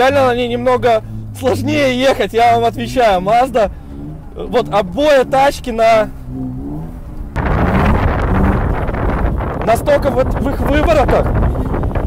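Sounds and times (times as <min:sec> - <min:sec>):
car engine running hard: 0:00.0 - 0:12.0
wind noise on microphone: 0:06.2 - 0:12.0.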